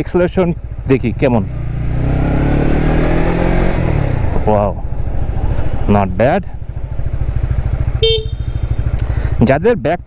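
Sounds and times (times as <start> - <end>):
motorcycle engine revving: 0.0 - 10.0.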